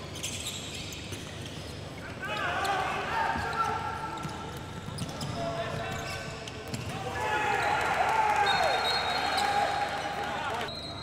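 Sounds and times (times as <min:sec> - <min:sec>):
sneakers squeaking on wooden court: 0:00.0 - 0:06.9.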